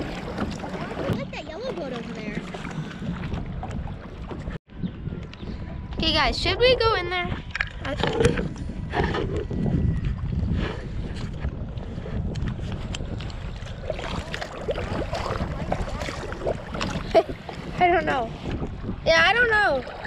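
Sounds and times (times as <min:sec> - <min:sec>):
water lapping against kayak: 0:00.0 - 0:04.6, 0:05.6 - 0:20.0
wind on microphone: 0:00.0 - 0:20.0
small splashes and knocks: 0:13.2 - 0:17.6.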